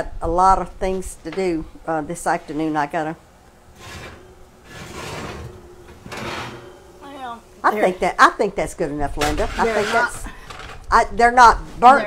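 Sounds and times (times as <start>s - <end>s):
metal oven rack sliding: 3.7s - 8.2s, 9.0s - 10.8s.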